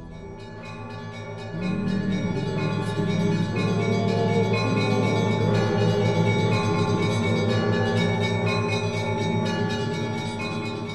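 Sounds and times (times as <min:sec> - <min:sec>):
church bells ringing: 0:00.0 - 0:10.9.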